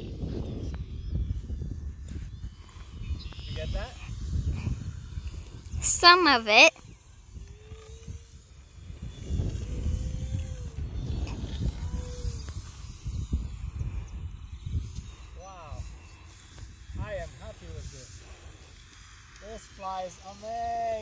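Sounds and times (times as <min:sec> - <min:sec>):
model plane motor whining: 0:00.0 - 0:21.0
wind rumbling on microphone: 0:00.0 - 0:21.0.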